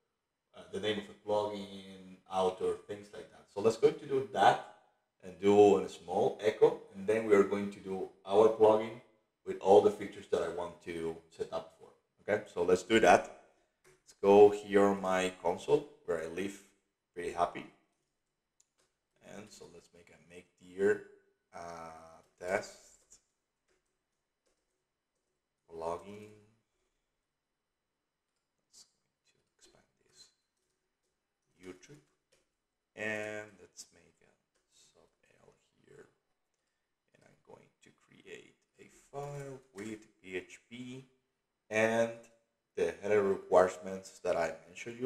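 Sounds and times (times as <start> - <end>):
person speaking: 0.6 - 4.6, 5.2 - 13.3, 14.0 - 16.6, 17.2 - 17.6, 19.2 - 21.0, 21.6 - 23.2, 25.7 - 26.5, 31.6 - 32.0, 33.0 - 36.1, 37.2 - 41.0, 41.7 - 42.2, 42.8 - 45.0
man mumbling: 19.3 - 20.2, 21.6 - 22.7, 25.8 - 26.4, 33.0 - 34.0, 39.2 - 41.0.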